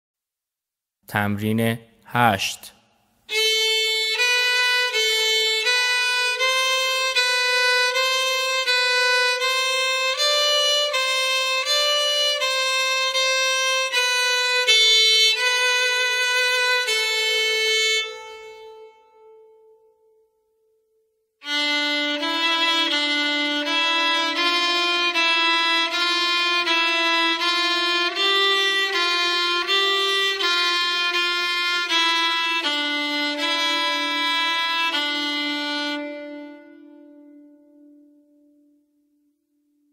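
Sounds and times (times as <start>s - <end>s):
solo violin long bowed notes: 3.3s - 19.9s, 21.4s - 38.3s.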